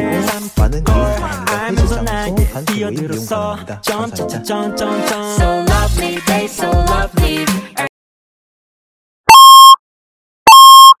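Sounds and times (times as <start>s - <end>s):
electronic beeps: 9.3s - 9.8s, 10.5s - 11.0s.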